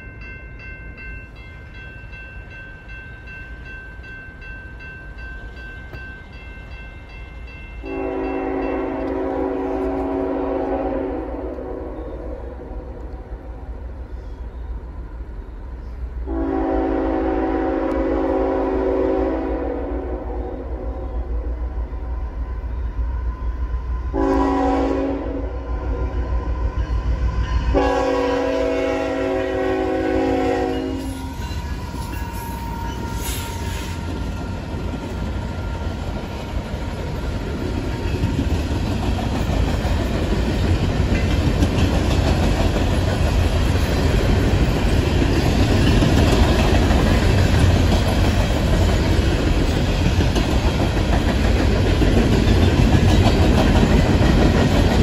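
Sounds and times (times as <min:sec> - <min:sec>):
train horn blasts: 0:07.8 - 0:13.0, 0:16.2 - 0:21.4, 0:24.1 - 0:34.1
wheels clattering on rails: 0:31.0 - 0:55.0.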